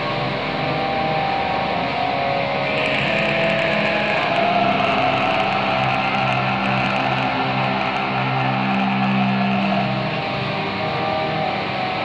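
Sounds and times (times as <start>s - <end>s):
electric guitars sustained notes: 0.0s - 12.0s.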